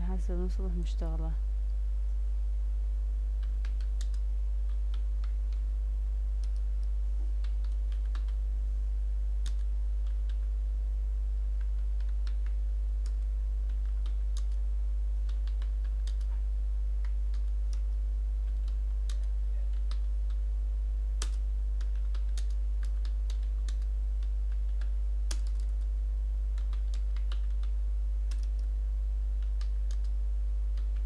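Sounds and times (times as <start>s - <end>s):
steady low hum: 0.0s - 31.0s
keyboard typing: 3.4s - 5.6s, 6.4s - 8.4s, 11.6s - 14.6s, 15.2s - 16.4s, 17.0s - 20.4s, 21.2s - 25.9s, 26.5s - 28.7s.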